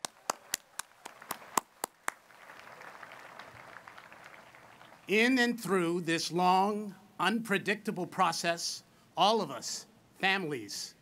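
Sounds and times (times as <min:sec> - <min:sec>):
crowd applause: 0:00.0 - 0:05.1
hands clapping close up: 0:00.0 - 0:05.1.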